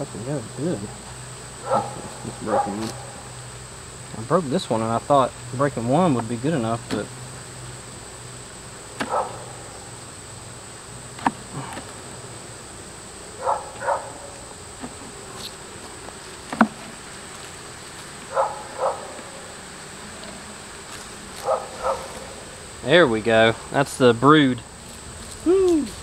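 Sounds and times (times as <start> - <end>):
bees buzzing: 0.0 - 26.0
hive tool scraping: 0.0 - 26.0.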